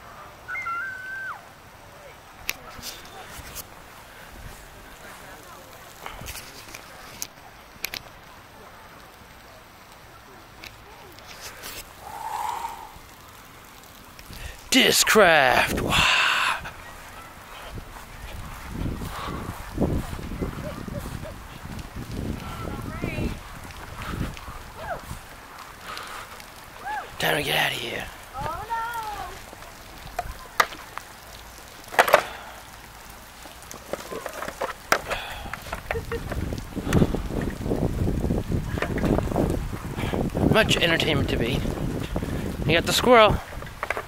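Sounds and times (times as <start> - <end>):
faint outdoor background noise: 0.0 - 44.0.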